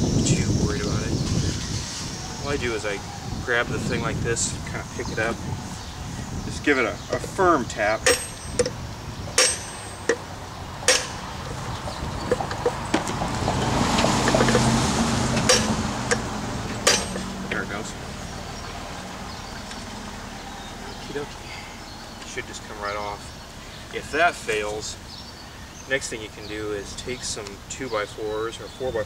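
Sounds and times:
hammer tapping on metal: 0:08.0 - 0:08.8, 0:09.4 - 0:10.2, 0:10.9 - 0:11.2, 0:15.4 - 0:16.2, 0:16.8 - 0:17.3.

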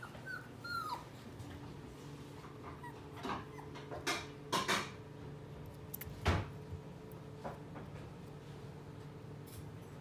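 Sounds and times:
puppy whimpering: 0:00.0 - 0:01.4, 0:02.6 - 0:04.0.

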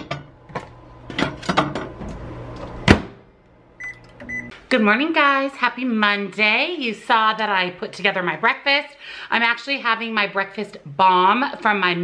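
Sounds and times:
loud clunk: 0:00.0 - 0:03.3
microwave oven humming: 0:00.0 - 0:04.5
short keypad beeps: 0:03.8 - 0:04.5.

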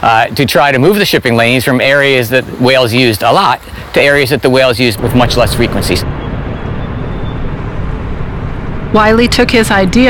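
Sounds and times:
water noise: 0:00.0 - 0:10.0
motorboat engine drone: 0:05.0 - 0:10.0.

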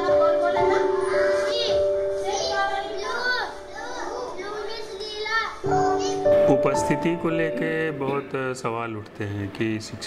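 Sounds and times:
children speaking together: 0:00.0 - 0:06.5.

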